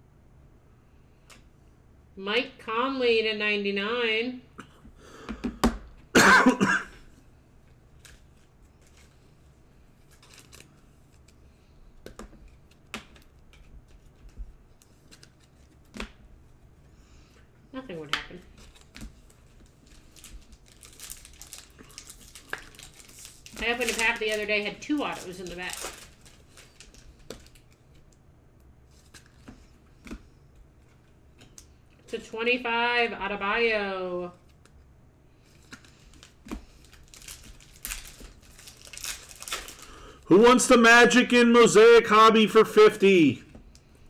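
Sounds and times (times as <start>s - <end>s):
trading cards rustling and clicking: 8.0s - 9.4s, 10.0s - 16.2s, 18.1s - 28.2s, 28.9s - 31.8s, 35.4s - 40.0s.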